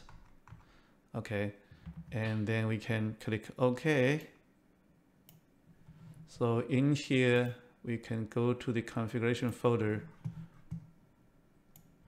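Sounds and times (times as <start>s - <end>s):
computer mouse clicks: 11.7s - 12.0s.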